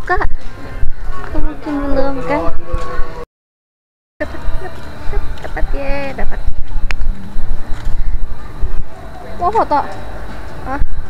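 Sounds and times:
wind buffeting microphone: 0.0s - 3.2s, 4.2s - 9.7s.

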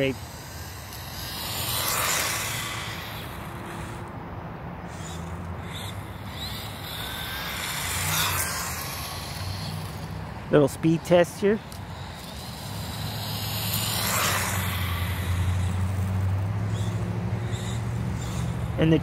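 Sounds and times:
electric motor whining: 0.0s - 4.2s, 4.8s - 19.0s
tyres rolling on asphalt: 0.0s - 19.0s.

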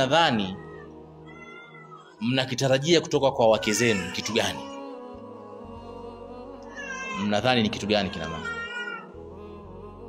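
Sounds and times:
man speaking: 2.2s - 4.7s, 7.2s - 8.5s.

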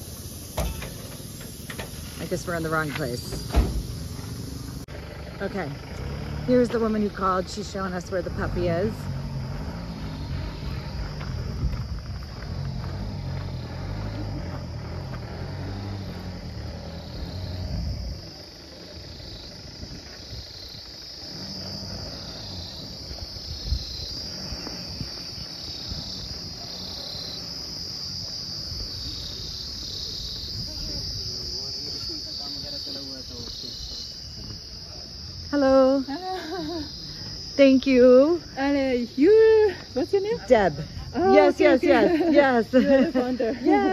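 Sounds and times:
insects buzzing: 0.0s - 43.9s.

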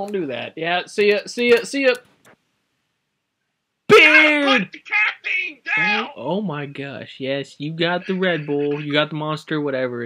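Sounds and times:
voice speaking: 3.9s - 6.3s, 7.7s - 8.9s
man's voice: 3.9s - 9.3s.

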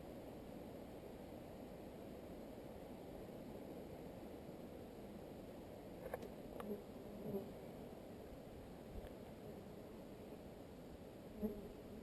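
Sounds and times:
flies buzzing: 6.0s - 12.0s.

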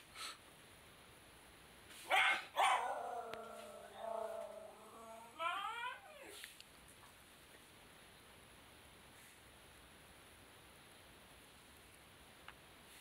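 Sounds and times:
dog yipping: 2.1s - 3.1s
dog barking: 2.1s - 3.2s
dog whining: 2.1s - 6.4s.

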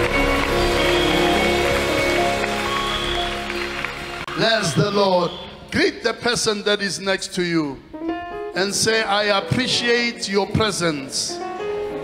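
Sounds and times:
live church band music: 0.0s - 12.0s.

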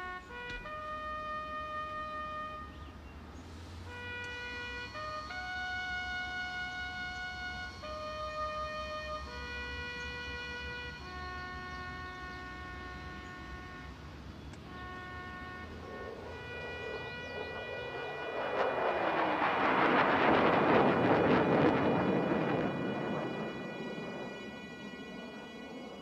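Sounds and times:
jet aircraft passing over: 0.0s - 26.0s
slow woodwind soundtrack music: 0.0s - 26.0s.

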